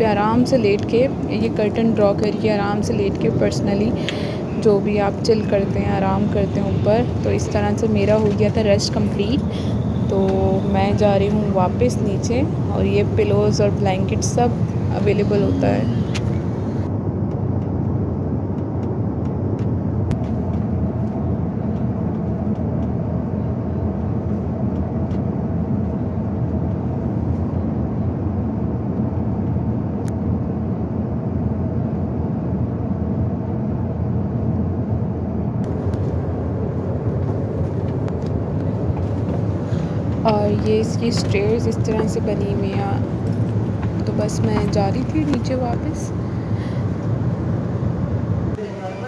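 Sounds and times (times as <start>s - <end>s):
airliner engine drone: 0.0s - 49.0s.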